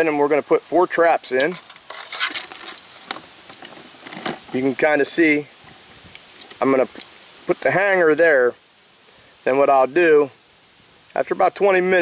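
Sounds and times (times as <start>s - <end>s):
steel traps and chains clinking: 1.3s - 4.3s.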